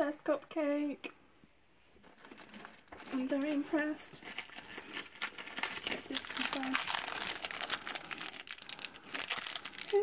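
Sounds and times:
foil bag crackling and tearing: 2.0 - 10.0.

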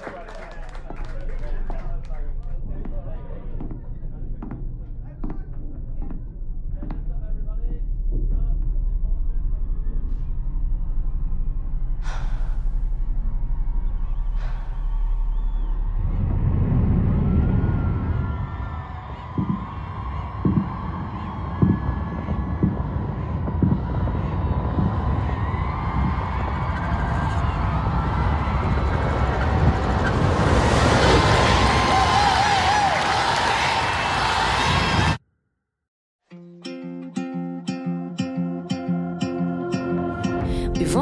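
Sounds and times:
soft low beat: 19.2 - 26.4.

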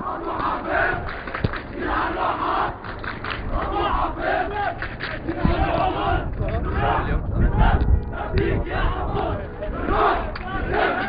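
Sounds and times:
crowd of men chanting: 0.0 - 11.0
low microphone rumble: 0.0 - 11.0.

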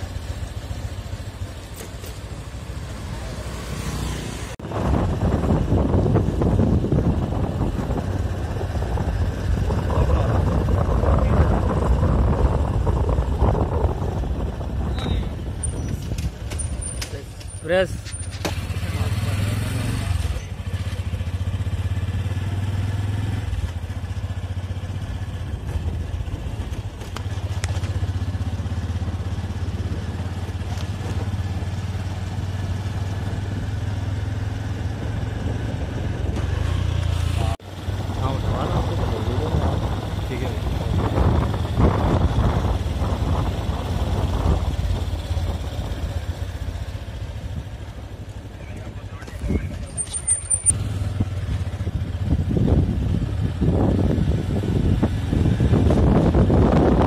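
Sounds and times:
vehicle rumble: 0.0 - 57.0
wind on microphone: 4.4 - 16.8, 25.2 - 31.8, 32.9 - 47.9, 49.2 - 57.0.

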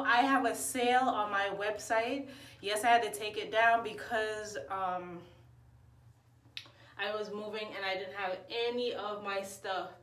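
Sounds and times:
woman speaking: 0.0 - 5.4, 7.0 - 10.0.

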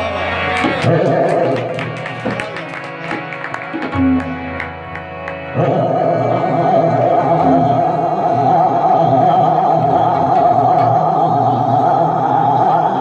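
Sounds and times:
harmonium chords: 0.0 - 13.0
man singing long note: 5.6 - 13.0.

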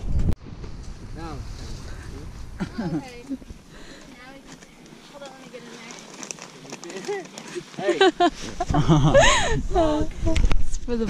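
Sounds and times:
wind buffeting microphone: 0.0 - 4.5, 8.5 - 11.0.

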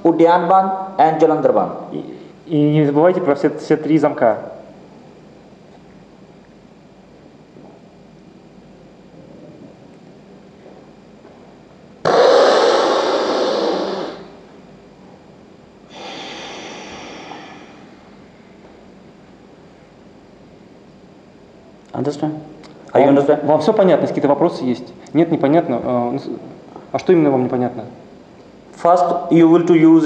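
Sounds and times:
forceful nasal exhalation: 12.0 - 14.4, 15.9 - 18.0.

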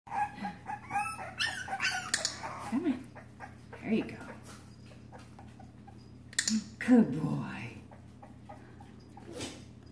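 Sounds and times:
puppy whining and yipping: 0.1 - 6.2.

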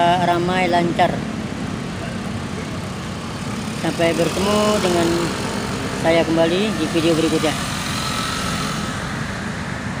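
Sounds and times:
motorcycles riding past: 1.7 - 10.0.

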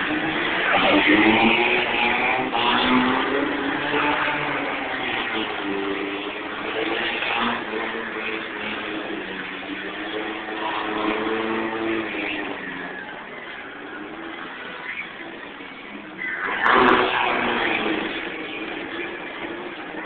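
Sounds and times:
car engines revving: 0.0 - 20.0
tyres spinning on asphalt: 0.0 - 20.0.

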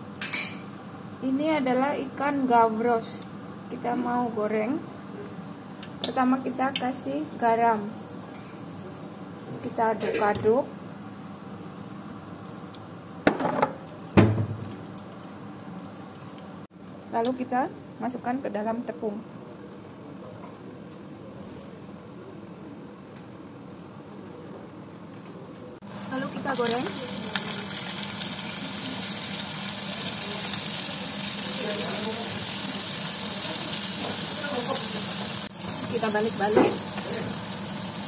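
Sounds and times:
fish sizzling in hot oil: 26.1 - 38.0.

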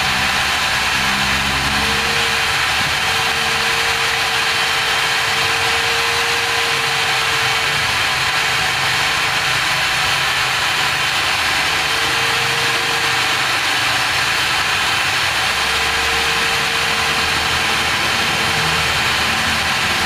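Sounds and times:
angle grinder motor whine: 0.0 - 20.0
metal scraping against grinding wheel: 0.0 - 20.0.

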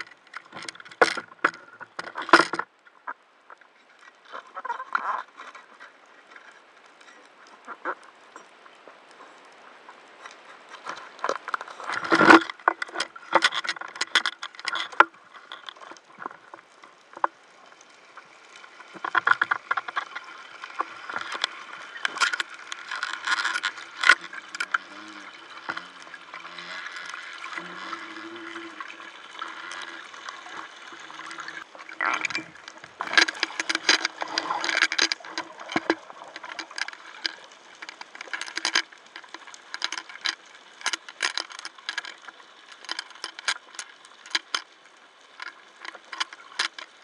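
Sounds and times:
sharp clicks and knocks: 0.0 - 2.7, 29.4 - 44.7.

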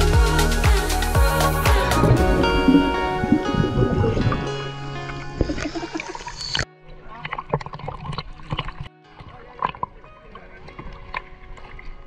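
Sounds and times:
soft background music: 0.0 - 12.0
water splashing: 1.8 - 12.0.

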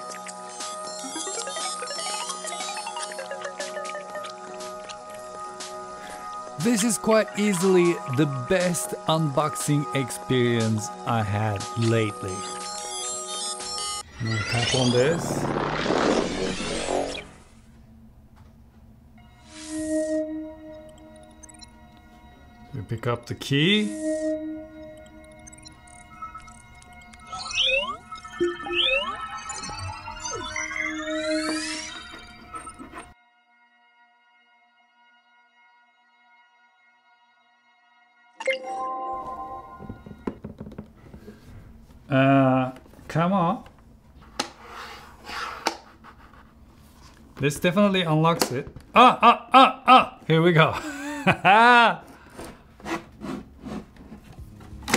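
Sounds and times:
chord of ringing tones: 19.2 - 33.0.

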